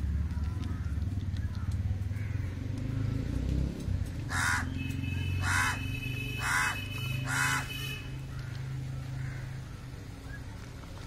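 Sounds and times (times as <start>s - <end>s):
crow cawing: 2.1s - 2.6s, 4.3s - 4.8s, 5.4s - 9.7s.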